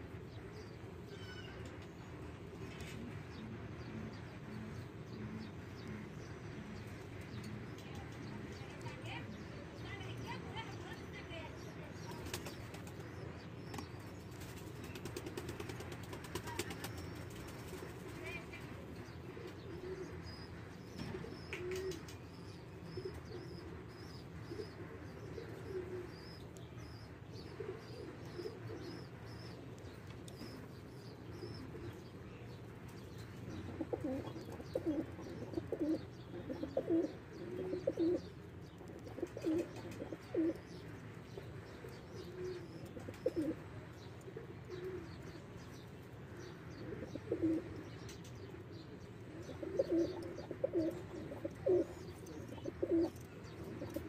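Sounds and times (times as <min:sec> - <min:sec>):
pigeons cooing: 0:00.0 - 0:09.5, 0:11.7 - 0:54.0.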